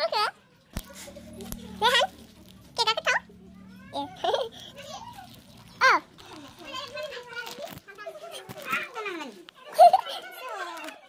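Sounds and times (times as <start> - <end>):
faint steady hum: 0.6 - 7.2.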